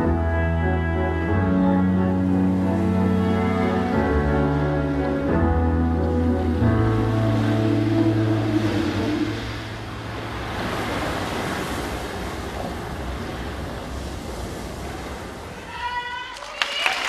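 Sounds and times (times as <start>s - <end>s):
held low music chord: 0.0s - 11.6s
ocean surf washing: 0.0s - 16.4s.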